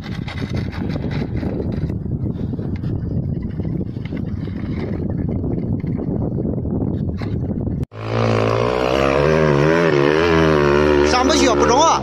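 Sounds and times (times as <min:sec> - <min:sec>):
rough wind-like noise: 0:00.0 - 0:12.0
motorcycle engine running hard: 0:07.4 - 0:12.0.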